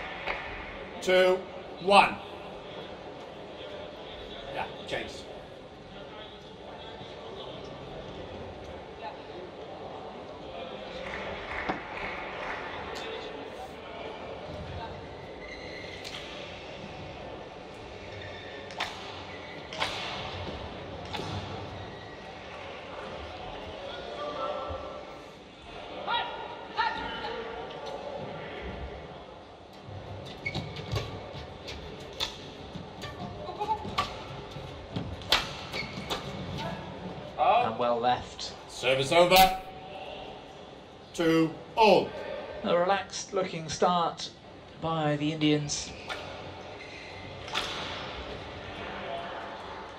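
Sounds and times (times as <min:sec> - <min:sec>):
indoor hall background noise: 0:00.0 - 0:49.9
shoe squeaks on court: 0:15.4 - 0:16.2, 0:35.6 - 0:36.4
rackets striking shuttlecock: 0:18.7 - 0:21.5, 0:35.2 - 0:36.3.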